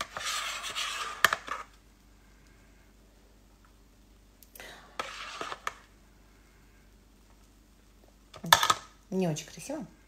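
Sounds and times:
metal spoon scraping cake tin: 0.0s - 1.7s, 5.0s - 5.8s.

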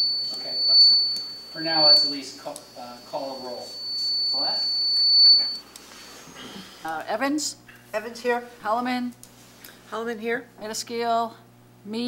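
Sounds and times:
microphone feedback whistle: 0.0s - 6.2s.

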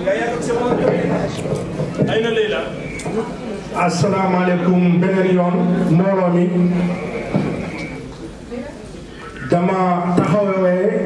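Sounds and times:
faint background voices: 0.0s - 11.0s
room noise: 0.0s - 11.0s
thud: 7.3s - 7.8s.

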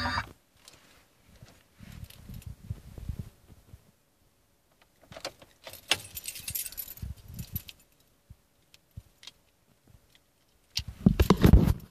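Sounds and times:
clicks and light knocks: 4.7s - 6.4s
car keys jangling: 5.2s - 8.1s.

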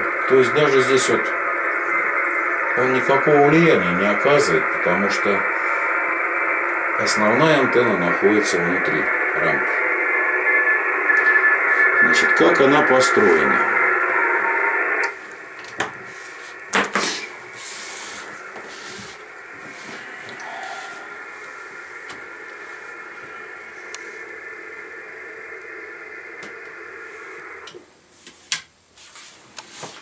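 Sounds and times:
faint steady tones: 0.0s - 28.0s
radio receiver hiss: 0.0s - 30.0s.

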